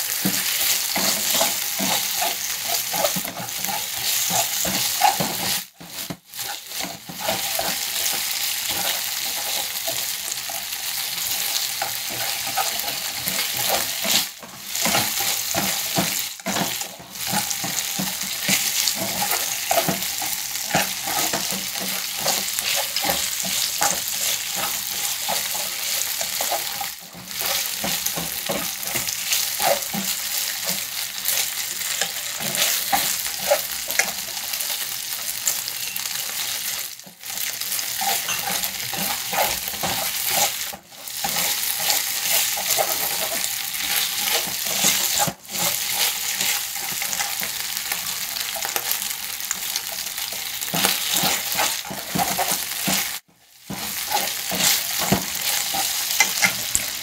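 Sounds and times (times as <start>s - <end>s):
chopsticks clicking and scraping pan: 0.0s - 57.0s
meat sizzling in a frying pan: 0.0s - 57.0s.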